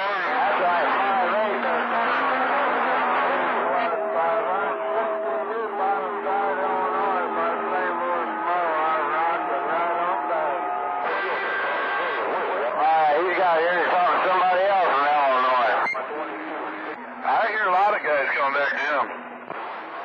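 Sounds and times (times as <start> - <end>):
cb radio garbled transmissions: 0.0 - 20.0.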